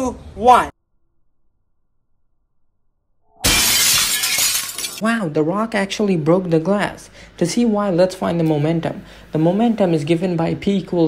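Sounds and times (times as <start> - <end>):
rock smashing glass pane: 3.4 - 5.0.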